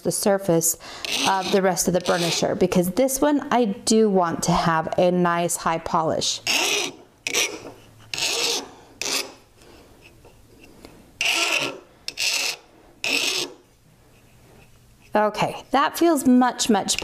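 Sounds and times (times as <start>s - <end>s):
hand file rasping on metal: 1.0s - 2.6s, 6.4s - 9.5s, 11.2s - 13.7s.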